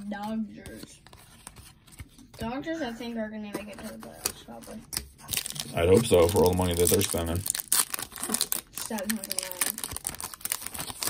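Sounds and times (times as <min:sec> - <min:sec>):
foil wrapper crinkling and tearing: 0:05.2 - 0:11.0.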